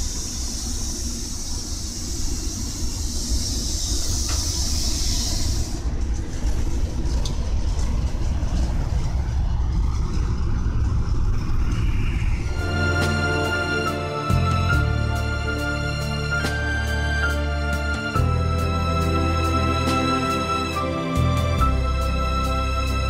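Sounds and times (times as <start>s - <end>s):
high hiss: 0.0s - 6.2s, 11.8s - 23.0s
train rumbling: 0.0s - 23.0s.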